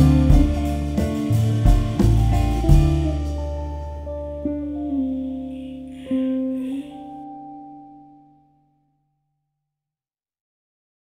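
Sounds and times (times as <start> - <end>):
guitar chord ringing out: 0.0 - 9.0.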